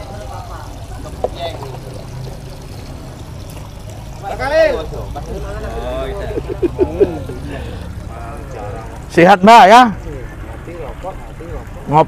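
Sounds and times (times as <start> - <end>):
water splashing and pouring: 0.0 - 12.0.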